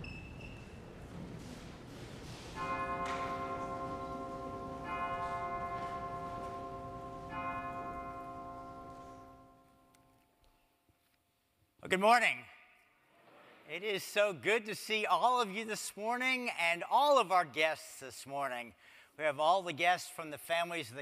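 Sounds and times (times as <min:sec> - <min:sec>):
organ music: 0:02.2 - 0:09.9
deep bell chime: 0:02.6 - 0:09.9.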